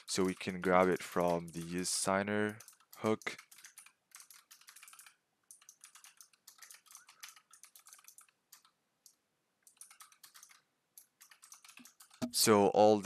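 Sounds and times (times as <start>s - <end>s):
computer keyboard typing: 0.0s - 8.8s, 9.7s - 12.4s.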